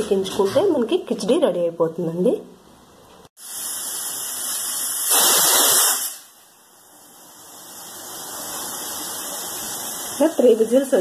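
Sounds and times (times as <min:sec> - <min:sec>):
pressure cooker hissing steam: 0:03.4 - 0:11.0.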